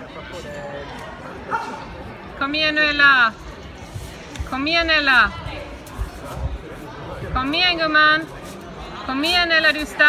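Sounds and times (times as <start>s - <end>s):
murmur of distant voices: 0.0s - 10.0s.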